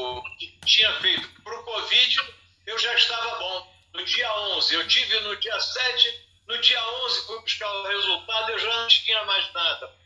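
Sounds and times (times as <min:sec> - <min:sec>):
man talking over video call: 0:00.0 - 0:10.0.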